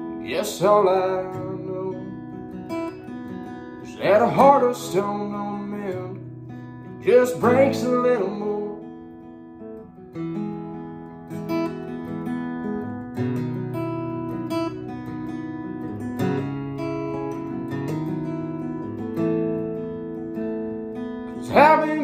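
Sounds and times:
acoustic guitar chords: 0.0s - 22.0s.

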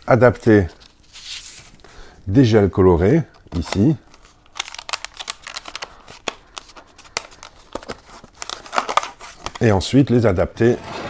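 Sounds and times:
plastic crinkles and clicks: 3.4s - 9.7s.

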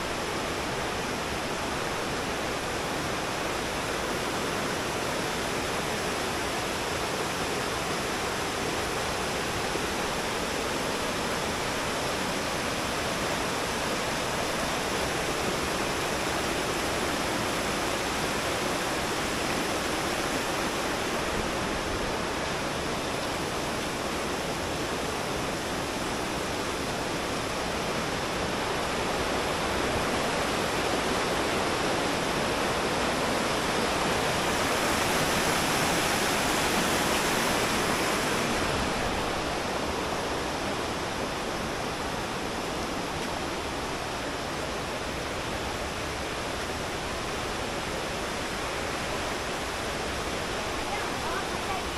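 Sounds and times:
river rushing over boulders: 0.0s - 51.9s.

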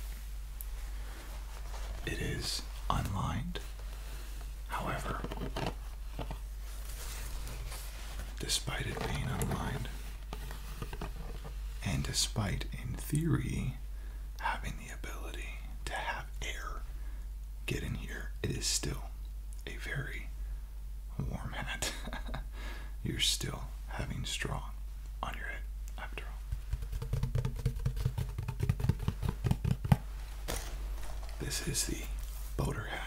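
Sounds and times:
soft whispering: 1.8s - 3.8s, 4.6s - 5.8s, 7.8s - 10.1s, 11.8s - 13.8s, 14.4s - 16.9s, 17.7s - 20.4s, 21.1s - 21.9s, 23.0s - 26.5s, 31.3s - 33.0s
fingers tapping on straw hat: 26.4s - 30.0s.

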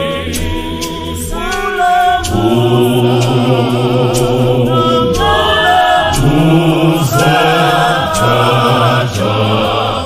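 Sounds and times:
choir singing gospel song: 0.0s - 10.0s.

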